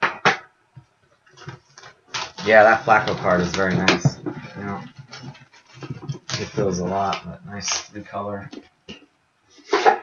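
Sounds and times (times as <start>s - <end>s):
plastic wrap crinkling: 1.2s - 8.5s.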